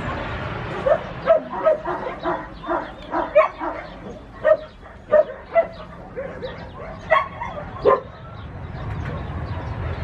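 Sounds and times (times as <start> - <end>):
dog barking: 0.8 - 8.9.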